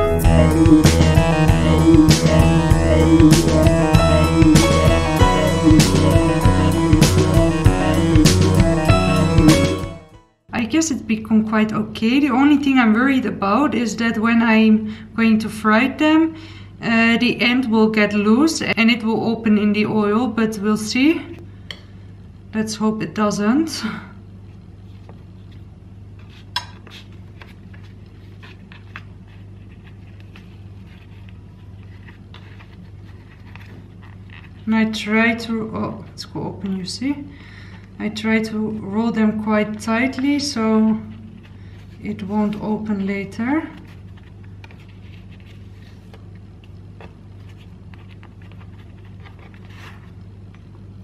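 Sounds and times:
low hum: 0:00.0 - 0:10.1
steady low hum: 0:00.0 - 0:51.0
pastry ticks and papery rustles: 0:26.2 - 0:35.0, 0:43.6 - 0:50.8.

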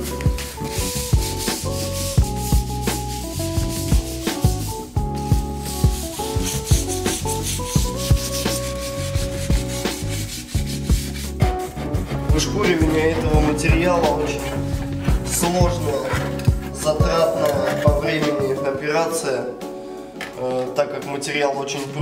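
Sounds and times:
sandpaper rubbing: 0:00.0 - 0:18.4
background music: 0:00.0 - 0:22.0.

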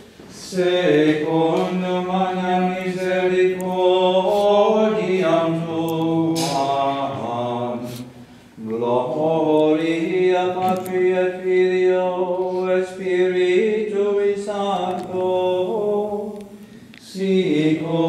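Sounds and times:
chant in long sustained notes: 0:00.3 - 0:18.0.

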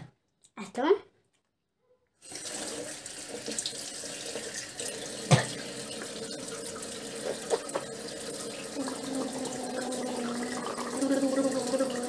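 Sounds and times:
tap running into sink: 0:04.9 - 0:09.0.

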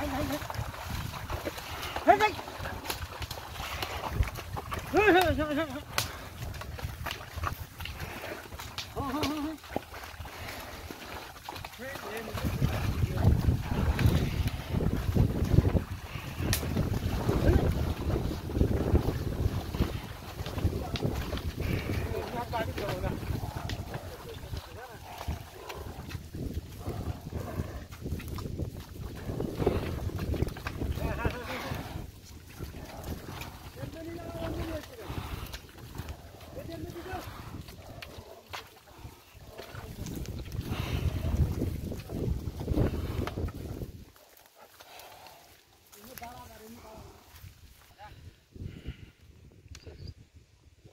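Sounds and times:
wind buffeting microphone: 0:00.0 - 0:44.2, 0:46.0 - 0:50.9
hooves and wheels squelching in mud: 0:00.0 - 0:50.2
men calling and shouting: 0:01.2 - 0:06.5, 0:10.3 - 0:27.8, 0:29.6 - 0:41.2.

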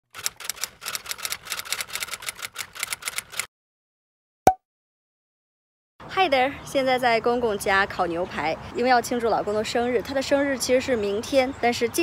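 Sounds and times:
sharp typing clicks: 0:00.1 - 0:03.5.

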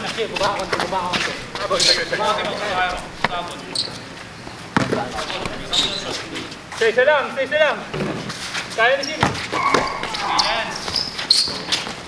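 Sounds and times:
players' voices: 0:00.0 - 0:07.9, 0:08.8 - 0:11.0
basketball bouncing on court: 0:04.7 - 0:06.2, 0:09.2 - 0:11.0.

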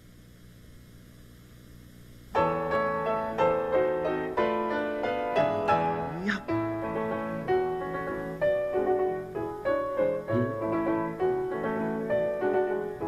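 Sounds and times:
low steady hum: 0:00.0 - 0:13.0
piano chords on a regular beat: 0:02.4 - 0:13.0.

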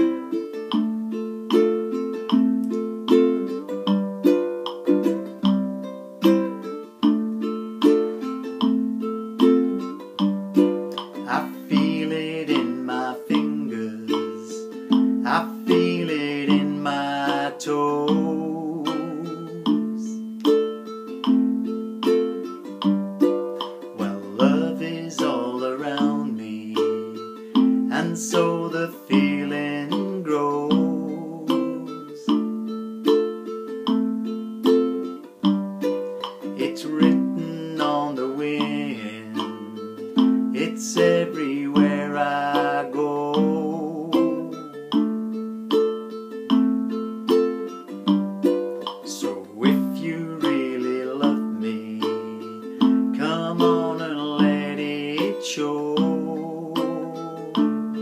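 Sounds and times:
ukulele strumming: 0:00.0 - 0:58.0
man singing: 0:10.9 - 0:20.3, 0:23.6 - 0:32.7, 0:36.2 - 0:45.2, 0:49.0 - 0:58.0.

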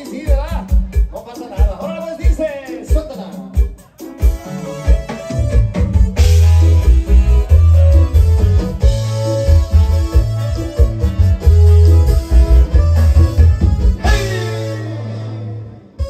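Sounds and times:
live band playing instrumental: 0:00.0 - 0:16.0
bass line: 0:03.0 - 0:16.0
plucked-string and keyboard melody: 0:03.0 - 0:16.0.

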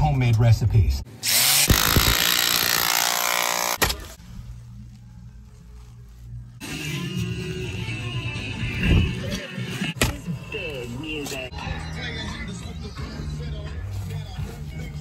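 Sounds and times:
cordless power tool running: 0:01.2 - 0:03.8
music: 0:04.3 - 0:15.0.

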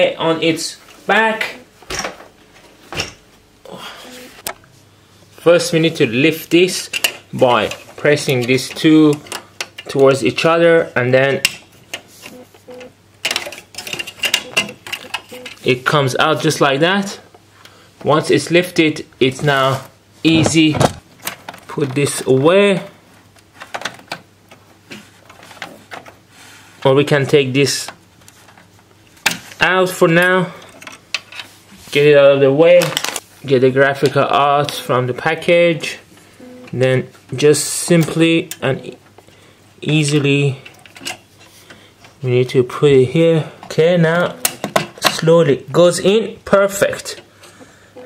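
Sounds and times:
man talking: 0:00.0 - 0:01.7, 0:05.4 - 0:09.2, 0:09.9 - 0:11.5, 0:15.6 - 0:17.3, 0:18.0 - 0:21.0, 0:21.7 - 0:23.0, 0:26.8 - 0:28.0, 0:29.6 - 0:30.6, 0:31.9 - 0:39.0, 0:39.8 - 0:40.7, 0:42.2 - 0:47.2.

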